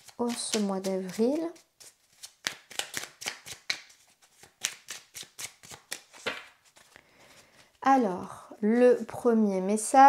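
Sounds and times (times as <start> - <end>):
card deck being shuffled: 0.0 - 7.0.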